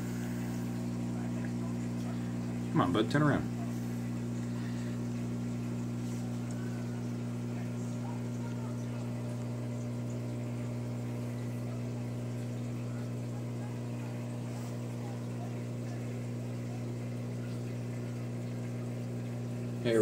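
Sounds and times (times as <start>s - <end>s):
aquarium pumps humming: 0.0s - 20.0s
faint bubbling water: 0.0s - 20.0s.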